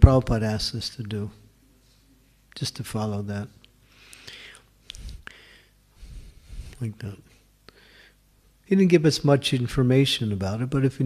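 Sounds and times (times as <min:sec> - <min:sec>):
soft breath close to microphone: 0:03.8 - 0:08.3.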